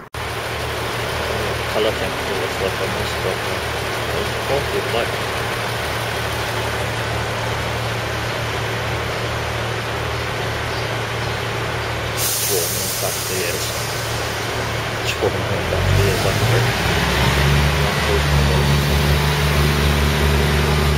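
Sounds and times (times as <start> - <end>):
diesel train idling: 0.0 - 20.9
hiss: 12.2 - 14.6.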